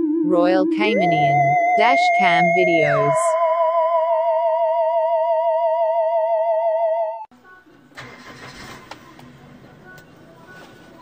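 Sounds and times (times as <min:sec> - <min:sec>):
wavering electronic tone: 0:00.0 - 0:07.3
car engine idling: 0:07.7 - 0:11.0.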